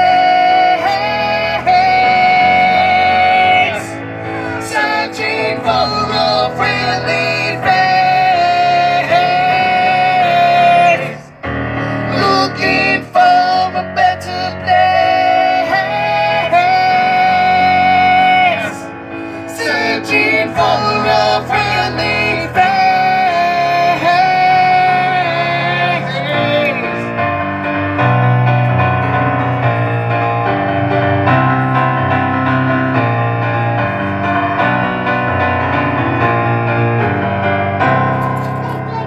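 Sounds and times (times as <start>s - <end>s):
man singing high held notes: 0.0s - 27.1s
keyboard playing: 0.0s - 39.0s.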